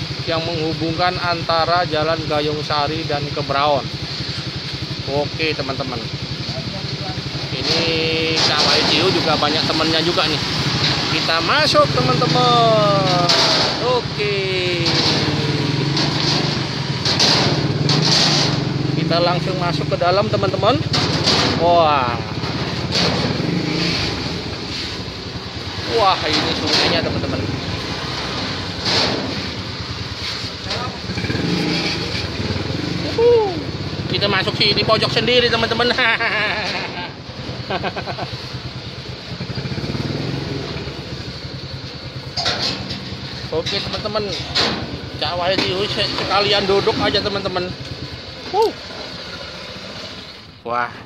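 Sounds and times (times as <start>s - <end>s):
scooter engines running: 0.0s - 50.7s.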